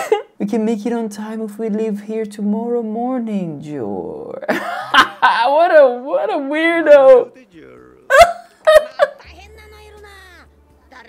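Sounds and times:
man laughing hard: 8.1 - 9.3.

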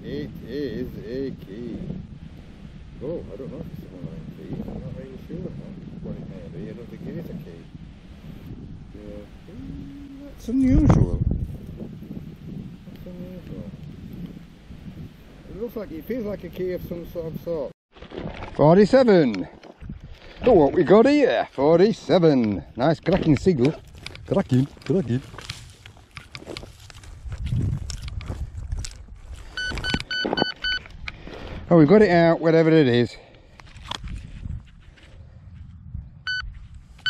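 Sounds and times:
wind rumble on microphone: 0.0 - 37.0
straw crunching: 17.9 - 21.6, 23.1 - 31.6
metal detector beeps: 29.5 - 30.9, 36.2 - 36.5.

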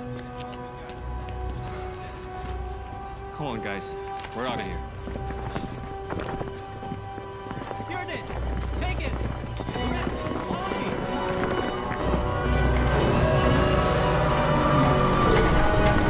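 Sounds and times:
film soundtrack music: 0.0 - 16.0.

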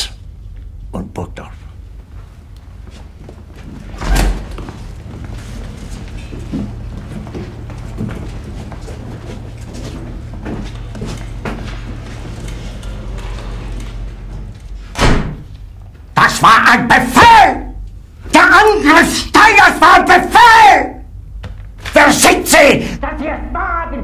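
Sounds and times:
low steady hum: 0.0 - 24.0
people shuffling and walking: 1.4 - 16.2
loud thud: 14.9 - 15.5.

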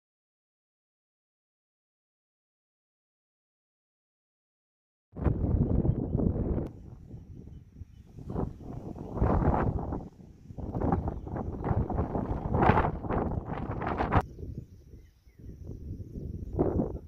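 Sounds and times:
wind buffeting microphone: 5.2 - 17.0.

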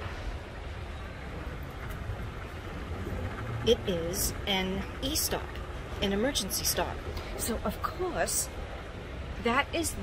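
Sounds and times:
low rumble and hiss: 0.0 - 10.0
escalator running: 0.6 - 7.7.

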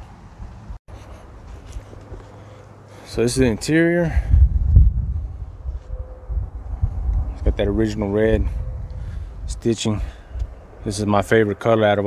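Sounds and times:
wind rumbling on microphone: 3.2 - 11.5.

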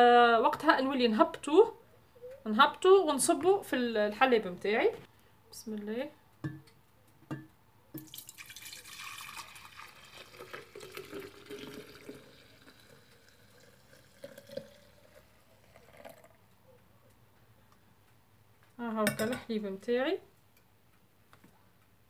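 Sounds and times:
milk pouring into glass pitcher: 8.0 - 16.5
liquid dripping: 8.0 - 16.6.

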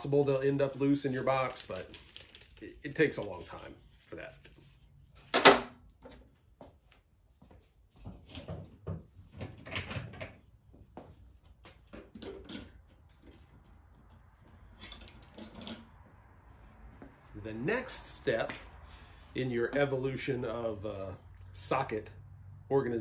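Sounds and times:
metal sockets clinking and rattling: 14.8 - 15.8.

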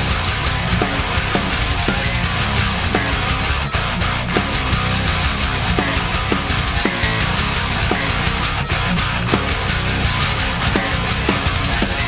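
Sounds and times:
distorted guitars: 0.0 - 12.0
fingerpicked electric bass guitar: 0.0 - 12.0
heavy metal music: 0.0 - 12.0.

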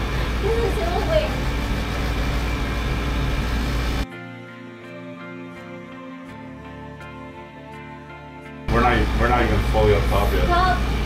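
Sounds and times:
low rumble and hiss: 0.0 - 4.0, 8.7 - 11.0.

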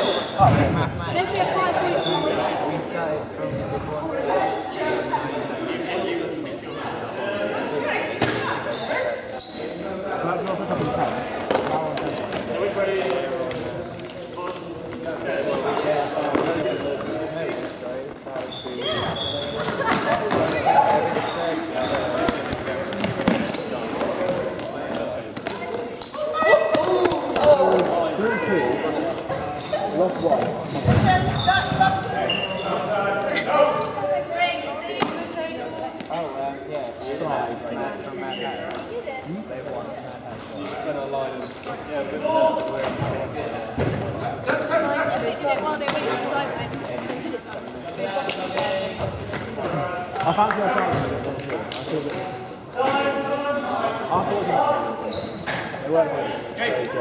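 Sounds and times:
sports shoes squeaking: 0.0 - 2.6, 8.2 - 39.2, 40.4 - 50.4, 51.8 - 53.1, 54.8 - 55.9.

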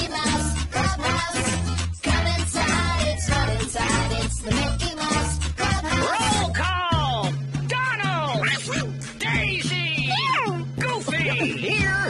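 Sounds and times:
cartoon theme song: 0.0 - 12.0
cartoon character voices exclaiming: 5.9 - 7.1, 7.8 - 12.0.

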